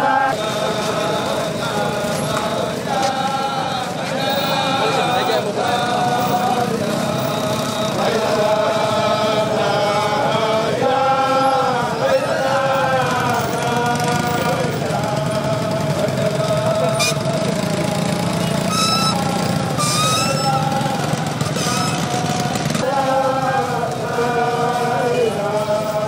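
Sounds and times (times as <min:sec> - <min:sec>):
crowd of men chanting: 0:00.0 - 0:26.0
motorcycle engines: 0:00.0 - 0:26.0.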